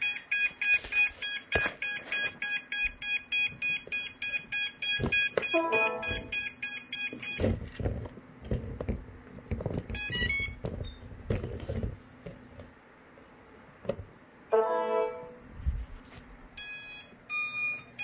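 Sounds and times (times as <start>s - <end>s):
quadcopter high beeps: 5.5s - 6.5s.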